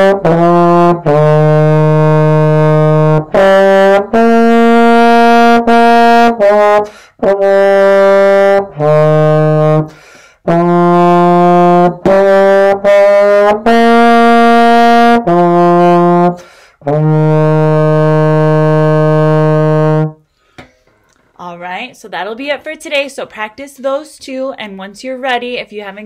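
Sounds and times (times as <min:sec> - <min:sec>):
trombone playing sustained notes: 0:00.0 - 0:20.2.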